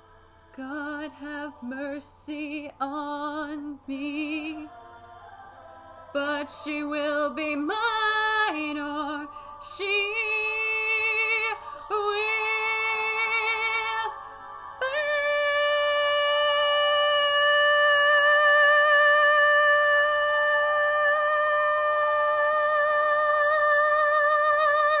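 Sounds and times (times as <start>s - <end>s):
person singing with vibrato: 0.0s - 25.0s.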